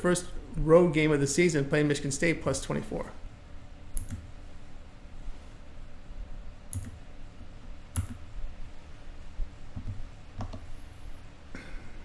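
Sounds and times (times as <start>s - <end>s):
faint low hum: 0.0s - 12.0s
computer mouse clicks: 3.9s - 4.3s, 6.7s - 7.0s, 8.0s - 8.2s.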